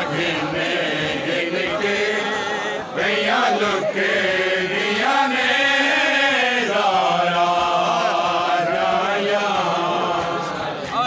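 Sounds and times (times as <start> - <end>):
men chanting a lament: 0.0 - 11.0.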